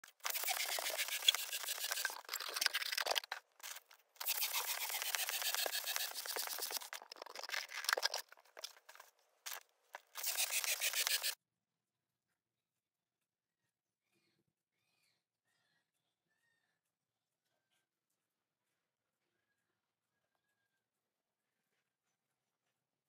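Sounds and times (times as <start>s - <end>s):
balloon pump air hiss: 0.1s - 3.1s, 3.7s - 7.0s, 10.1s - 11.4s.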